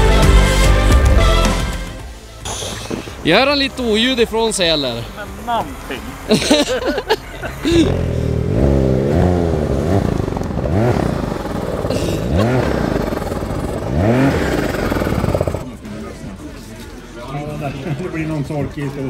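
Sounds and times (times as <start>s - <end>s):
snowmobile engine revving: 0.0s - 15.8s.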